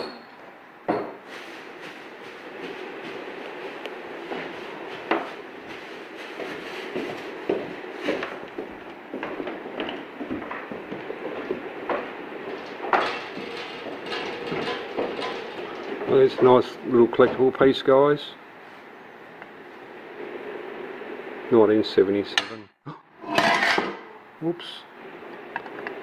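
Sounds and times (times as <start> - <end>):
room noise: 0.0 - 26.0.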